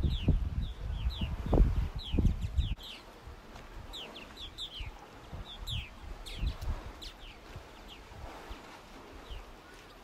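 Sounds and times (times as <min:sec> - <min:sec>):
birds chirping in flight: 0:03.8 - 0:10.0.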